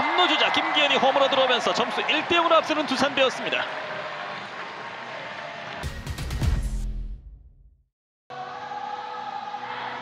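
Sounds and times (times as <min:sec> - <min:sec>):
stadium background noise: 0:00.0 - 0:05.8.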